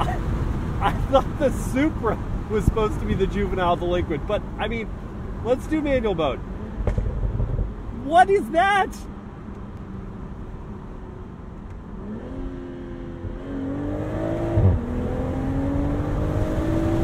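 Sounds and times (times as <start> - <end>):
car engine accelerating: 11.8 - 17.0.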